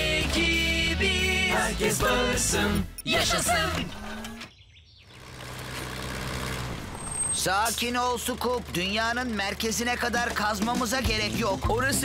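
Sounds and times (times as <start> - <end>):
person singing: 0.0 - 4.4
construction vehicle engine hum: 0.0 - 12.0.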